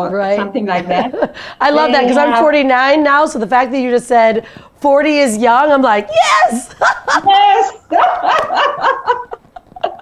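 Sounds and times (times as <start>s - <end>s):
women laughing: 6.2s - 10.0s.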